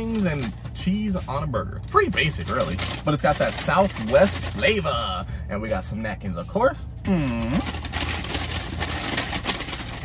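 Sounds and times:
paper bag rustling: 2.1s - 5.1s, 7.2s - 10.0s.

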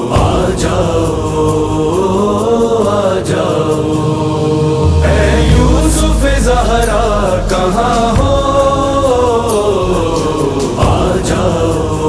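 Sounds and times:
wavering devotional singing: 0.0s - 12.0s
deep bass drone: 3.5s - 11.6s.

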